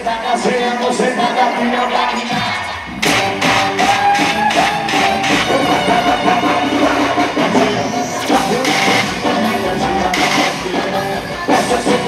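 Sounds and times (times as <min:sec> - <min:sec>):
person singing over band: 0:00.0 - 0:12.0
drum kit: 0:02.3 - 0:12.0
electric guitar: 0:03.0 - 0:12.0.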